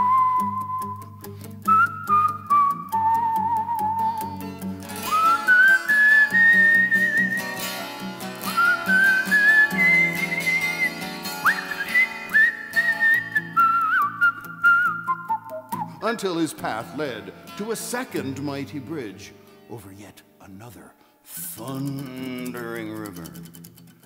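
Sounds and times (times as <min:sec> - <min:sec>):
whistled melody: 0:00.0 - 0:16.0
twelve-string acoustic guitar picking: 0:00.0 - 0:20.1, 0:21.4 - 0:24.0.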